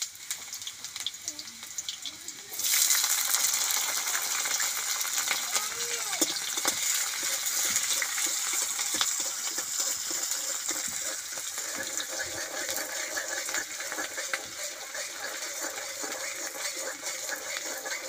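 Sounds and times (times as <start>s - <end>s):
vegetables sizzling in hot oil: 0.0s - 18.0s
metal spatula scraping a wok: 6.2s - 18.0s.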